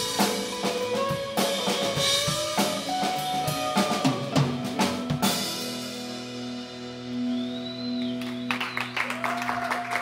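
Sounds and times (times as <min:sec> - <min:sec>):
rock band chord ringing out: 0:00.0 - 0:07.2
audience clapping: 0:08.0 - 0:10.0.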